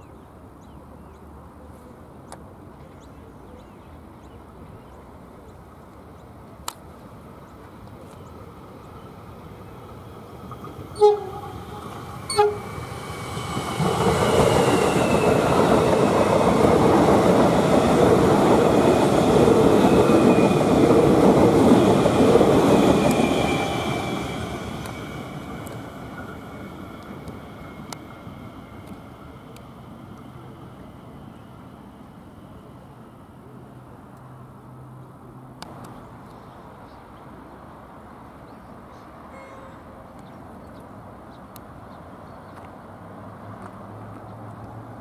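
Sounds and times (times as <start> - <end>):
train wheels on rail: 7.5 - 33.0
train horn toots: 10.9 - 12.8, 39.3 - 39.8.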